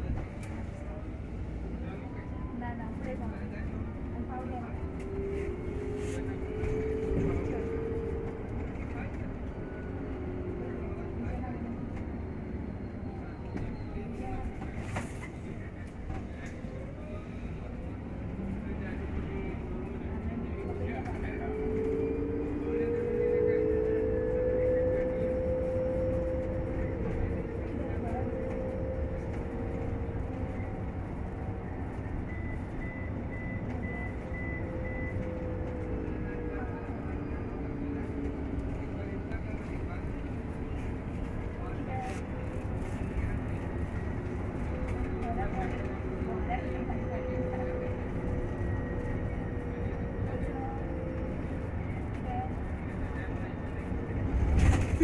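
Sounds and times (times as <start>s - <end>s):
road and tyre rumble: 0.0s - 55.0s.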